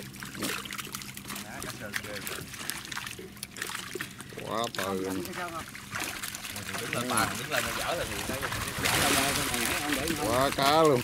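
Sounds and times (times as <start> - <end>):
fish thrashing and splashing: 0.0 - 11.0
steady low hum: 0.0 - 11.0
water sloshing: 0.0 - 11.0.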